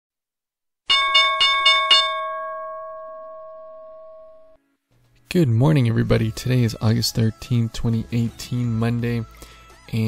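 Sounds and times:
bell ringing: 0:00.9 - 0:04.6.

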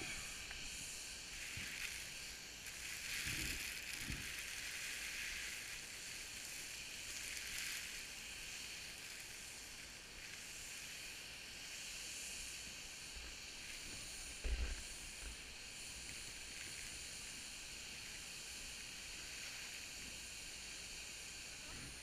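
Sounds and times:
skis hissing on snow: 0:00.0 - 0:22.0.

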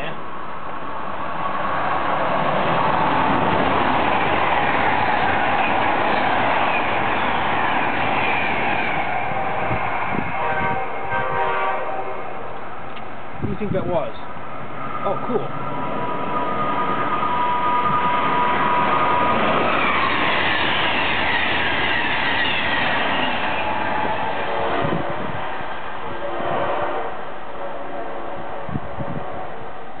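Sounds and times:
train passing at speed: 0:00.0 - 0:30.0
wheel and rail rushing noise: 0:00.0 - 0:30.0.

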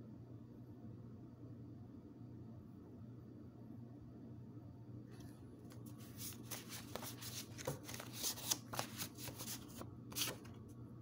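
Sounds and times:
paper cards being shuffled: 0:05.7 - 0:10.6.

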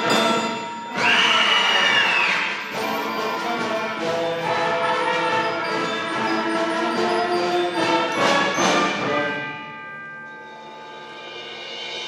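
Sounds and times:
concert band chords: 0:00.0 - 0:10.4.

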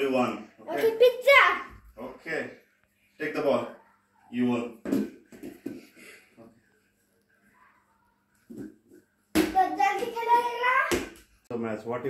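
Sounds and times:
boy shouting: 0:00.6 - 0:01.8, 0:09.4 - 0:11.1.

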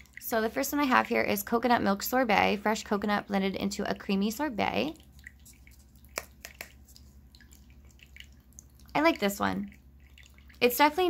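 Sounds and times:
sharp drip-like ticks: 0:00.0 - 0:01.6, 0:03.8 - 0:11.0
faint low hum: 0:00.0 - 0:11.0
tabletop fountain trickling: 0:00.0 - 0:11.0.

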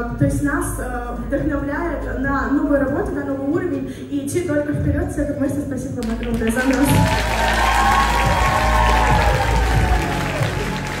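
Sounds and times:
audience applauding: 0:06.1 - 0:11.0
music with sustained tones: 0:07.0 - 0:11.0.

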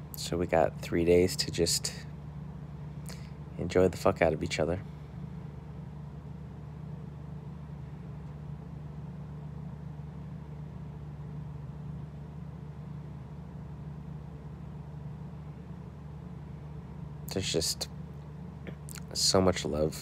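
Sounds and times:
machine hum: 0:00.0 - 0:20.0.

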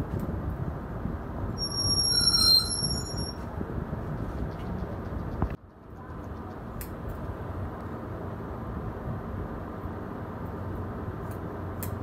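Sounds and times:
high-pitched squeal: 0:01.6 - 0:03.4.

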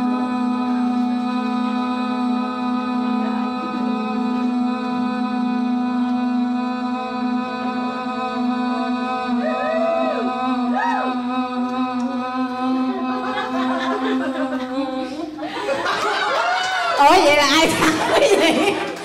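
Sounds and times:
women singing a long note: 0:00.0 - 0:18.7.

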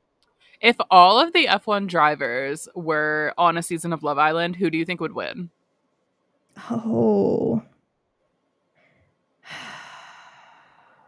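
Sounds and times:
woman sighing: 0:06.6 - 0:07.6, 0:09.5 - 0:10.8.

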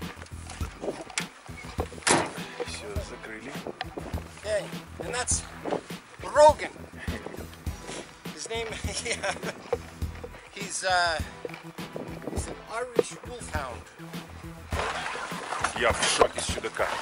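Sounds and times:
handling noise: 0:00.0 - 0:13.6
sharp knocks: 0:00.8 - 0:02.7.

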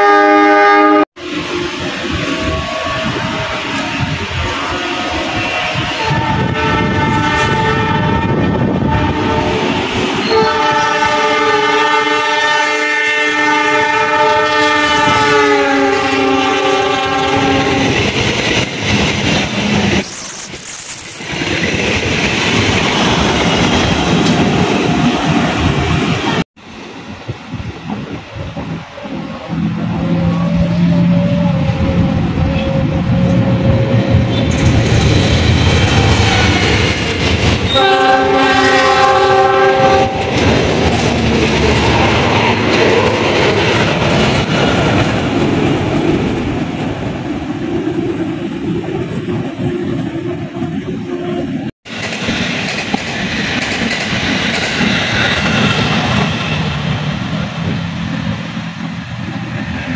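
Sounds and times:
locomotive horn blasts: 0:00.0 - 0:01.1, 0:02.3 - 0:18.0, 0:29.6 - 0:34.5, 0:37.7 - 0:40.4
rumble of approaching train: 0:00.0 - 0:59.9
train wheels clattering: 0:33.3 - 0:38.7, 0:51.9 - 0:57.8.

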